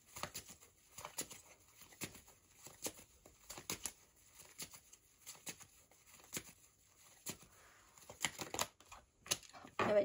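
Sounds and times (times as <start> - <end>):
cards rustling: 0.0 - 9.7.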